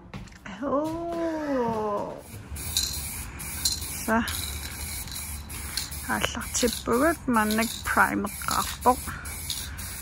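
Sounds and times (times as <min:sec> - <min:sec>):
aerosol spray-can hiss: 0:02.2 - 0:10.0.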